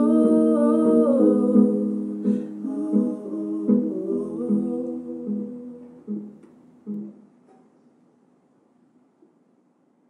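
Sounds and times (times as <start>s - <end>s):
woman singing wordlessly: 0.0s - 6.4s.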